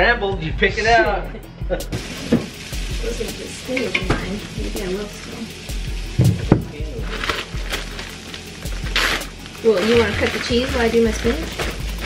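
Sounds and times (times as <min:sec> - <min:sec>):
plastic bag crinkling: 0:07.0 - 0:12.0.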